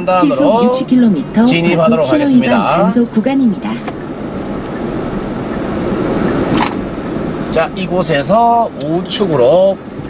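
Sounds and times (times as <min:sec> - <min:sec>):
car cabin road and engine noise: 0:00.0 - 0:10.0.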